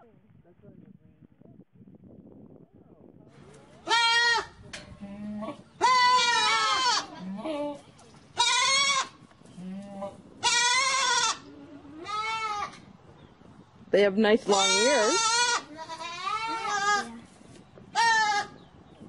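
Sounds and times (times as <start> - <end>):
goats bleating: 3.8 - 7.8, 8.4 - 12.8, 14.5 - 17.2, 18.0 - 18.6.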